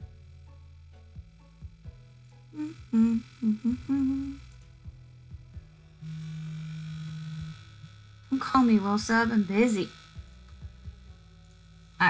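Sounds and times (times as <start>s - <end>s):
woman humming: 2.6s - 4.5s, 6.0s - 7.6s.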